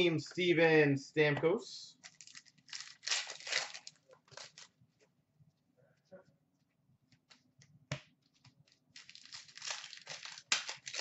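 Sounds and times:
foil wrapper crinkling: 2.0s - 4.7s, 8.7s - 11.0s.

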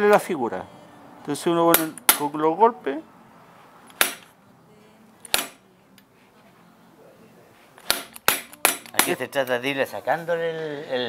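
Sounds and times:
hammer striking steel chisel: 1.7s - 2.3s, 3.9s - 4.3s, 5.3s - 5.6s, 7.8s - 9.2s.

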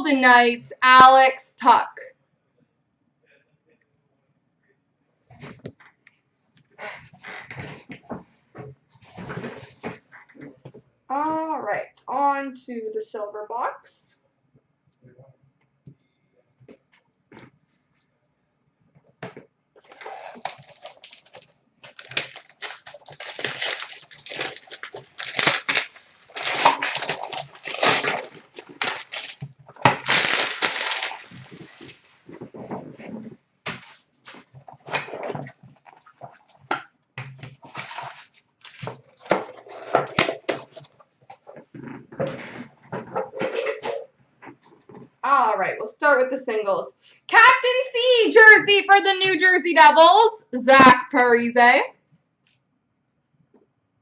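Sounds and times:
plastic wrap crinkling and tearing: 19.8s - 36.5s, 37.4s - 41.0s.

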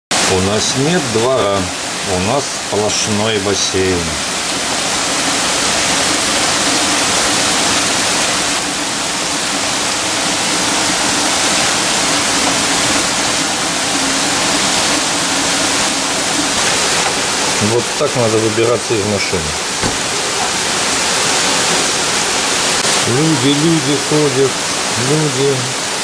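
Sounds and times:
heavy rain pouring: 0.1s - 26.0s.

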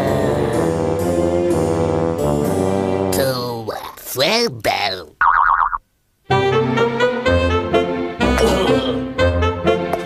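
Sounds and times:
brassy jazzy cartoon music: 0.0s - 3.4s, 6.3s - 10.0s
cartoon boing warbling tone: 5.2s - 5.8s.

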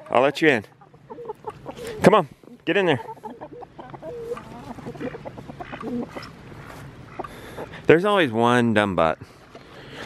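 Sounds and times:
hens clucking: 0.0s - 10.0s.

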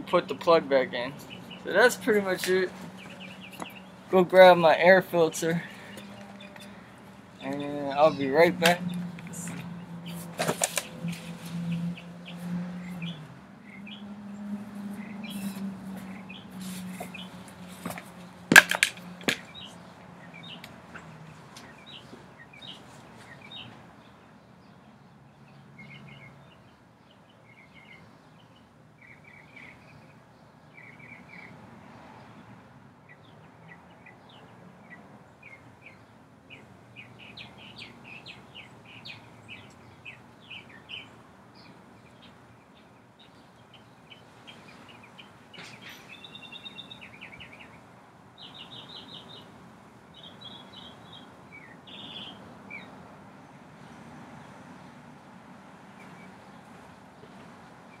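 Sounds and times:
small birds chirping: 0.0s - 32.4s, 33.0s - 55.1s.

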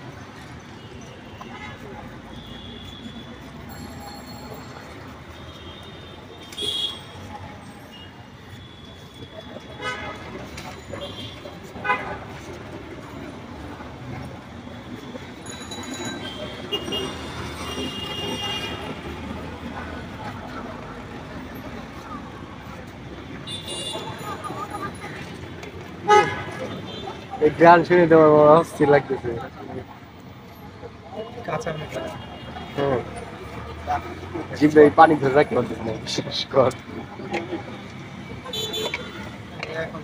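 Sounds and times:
street background noise: 0.0s - 40.0s
vehicle horn: 5.4s - 7.1s, 26.0s - 27.1s, 38.5s - 39.2s.

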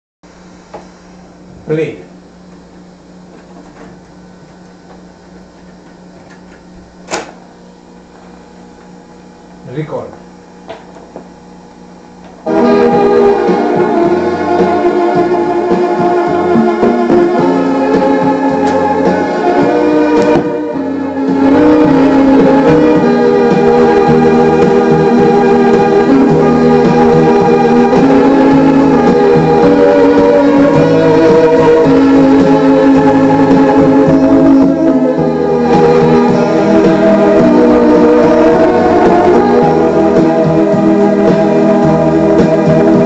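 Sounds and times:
steady low hum: 0.3s - 43.0s
music from cassette boombox: 10.4s - 43.0s.

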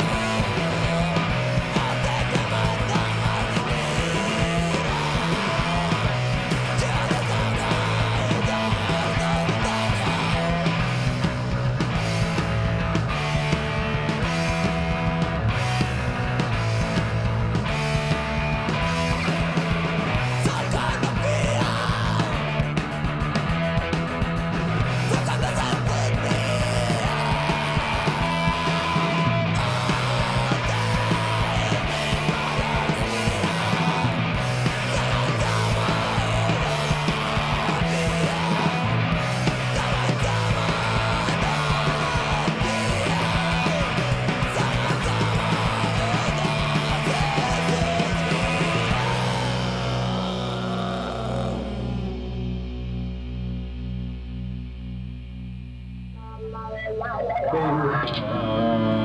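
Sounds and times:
rock band playing: 0.0s - 59.0s.

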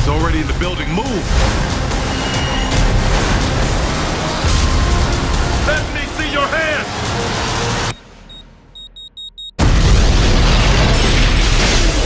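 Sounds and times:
short high electronic beeps: 8.3s - 9.6s
loud explosion: 9.6s - 12.0s.

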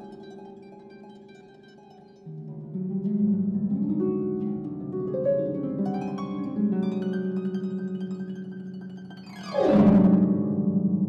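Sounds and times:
harp plucked notes: 0.0s - 11.0s.

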